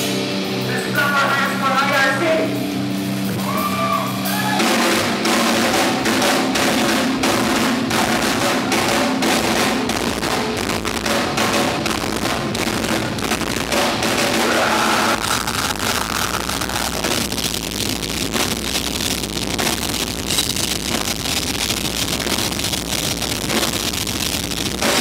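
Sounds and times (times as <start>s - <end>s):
bass guitar: 0.0s - 25.0s
electric guitars: 0.0s - 25.0s
rapid drum hits: 0.0s - 25.0s.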